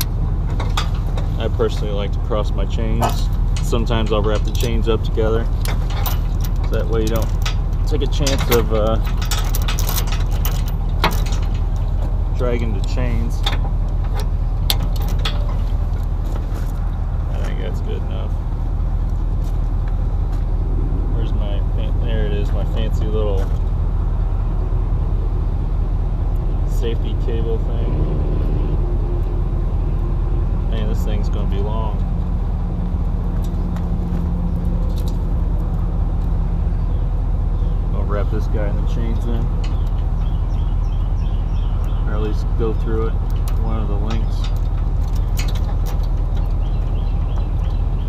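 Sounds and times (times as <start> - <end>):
diesel truck engine idling: 0.0 - 48.0
safety chains clinking: 3.0 - 12.0.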